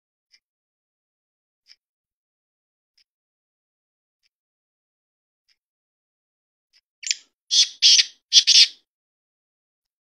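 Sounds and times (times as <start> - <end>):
francolin calling: 7.0 - 8.8.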